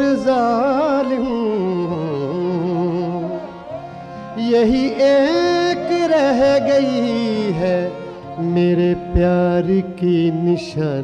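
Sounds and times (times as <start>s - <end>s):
instrumental accompaniment: 0.0s - 11.0s
man singing sustained notes: 0.0s - 11.0s.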